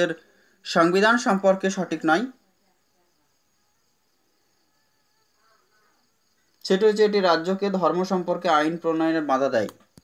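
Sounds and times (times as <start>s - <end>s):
crickets chirring: 0.0s - 10.0s.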